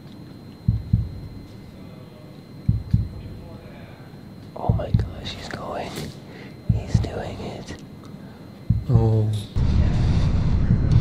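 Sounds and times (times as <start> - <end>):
low thumps: 0.6 - 1.5, 2.7 - 3.5, 4.6 - 5.2, 6.7 - 7.1, 8.7 - 9.0
man whispering: 3.2 - 7.9.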